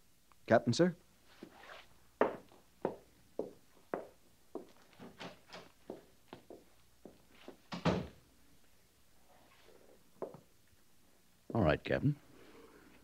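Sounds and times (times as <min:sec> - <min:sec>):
footsteps knocking: 0:02.2 - 0:08.1.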